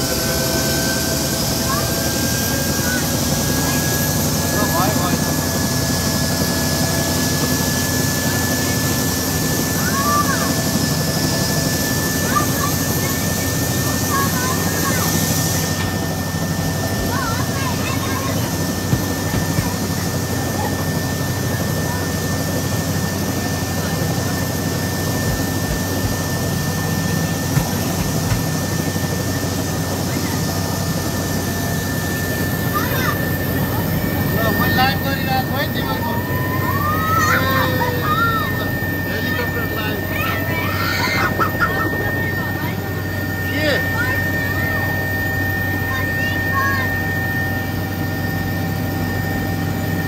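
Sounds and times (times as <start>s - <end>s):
helicopter engine and rotor drone: 0.0s - 50.0s.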